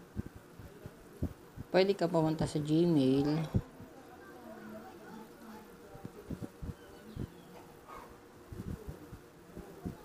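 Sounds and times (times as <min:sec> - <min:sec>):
faint buzzing hum: 0:00.0 - 0:10.0.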